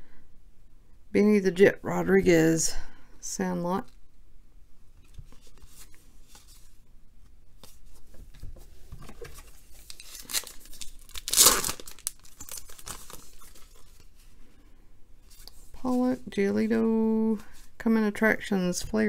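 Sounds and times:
cards shuffled with rustling: 0:05.0 - 0:14.3, 0:15.2 - 0:16.3
wrapper torn open: 0:09.8 - 0:14.0.

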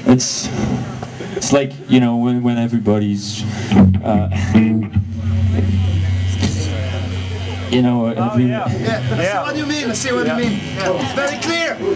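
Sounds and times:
amplifier hum: 0:03.2 - 0:11.0
man laughing: 0:08.7 - 0:09.6.

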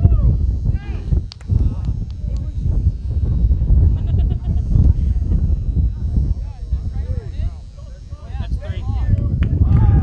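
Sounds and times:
heavy low rumble: 0:00.0 - 0:10.0.

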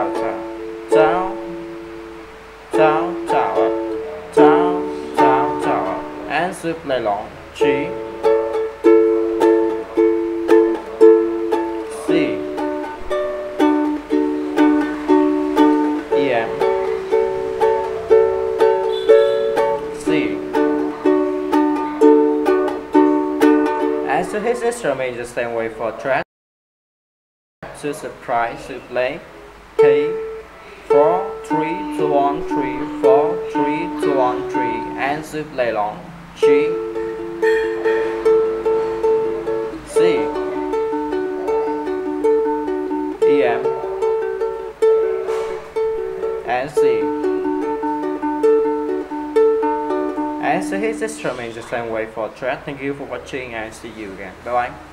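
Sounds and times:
ukulele strumming: 0:00.0 - 0:26.2, 0:28.5 - 0:54.9.

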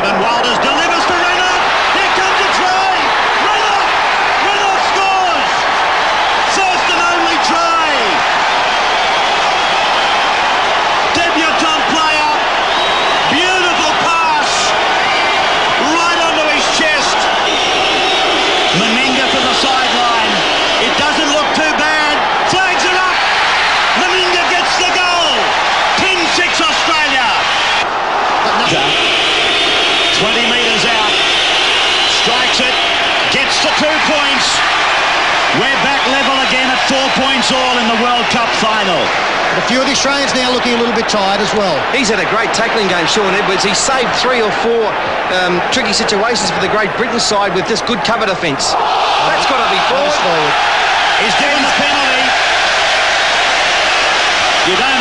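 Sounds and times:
stadium crowd shouting and chanting: 0:00.0 - 0:55.0.

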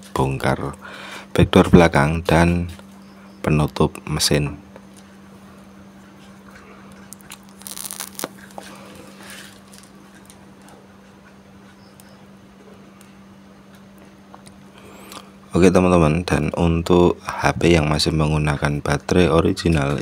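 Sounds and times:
steady low hum: 0:00.0 - 0:20.0
crackly handling noise: 0:06.0 - 0:12.2
smartphone being handled: 0:07.1 - 0:10.0.

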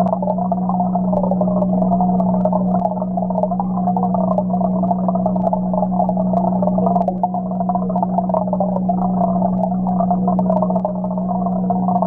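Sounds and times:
fluttering warbling tone: 0:00.0 - 0:12.0
low hum of aquarium equipment: 0:00.0 - 0:12.0.

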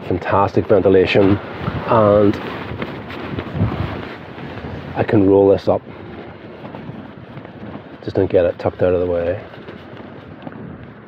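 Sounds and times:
gusty wind on microphone: 0:00.0 - 0:11.0.

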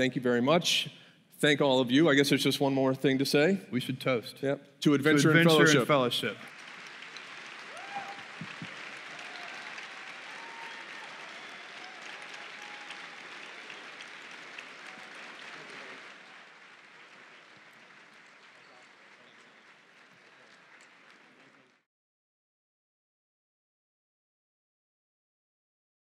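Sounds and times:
audience applauding: 0:05.4 - 0:21.9.

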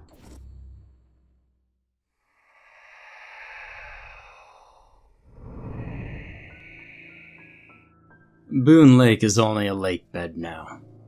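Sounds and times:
breathy airy whoosh: 0:02.2 - 0:08.4.

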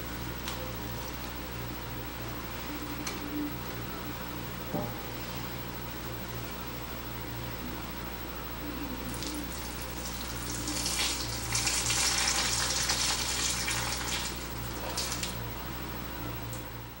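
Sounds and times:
water running: 0:09.1 - 0:15.4.

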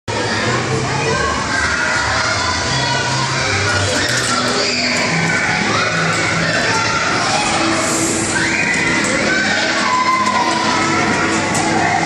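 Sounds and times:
children playing hubbub: 0:00.1 - 0:12.0.

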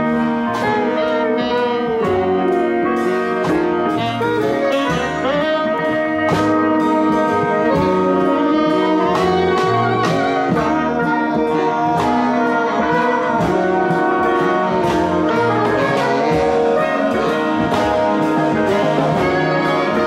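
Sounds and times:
saxophones and trumpet playing: 0:00.0 - 0:20.0.

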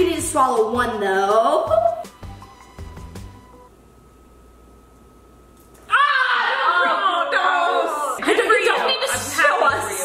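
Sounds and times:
woman squealing: 0:05.9 - 0:07.9.

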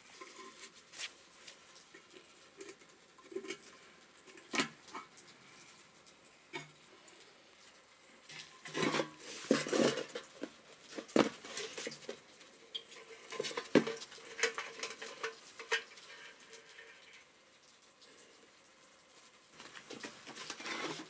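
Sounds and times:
metal tank knocking and scraping: 0:08.6 - 0:11.9.

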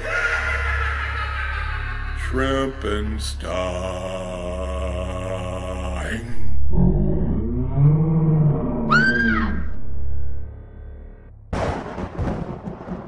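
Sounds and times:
steady low drone: 0:00.0 - 0:11.6
man singing long wavering notes: 0:02.2 - 0:08.8.

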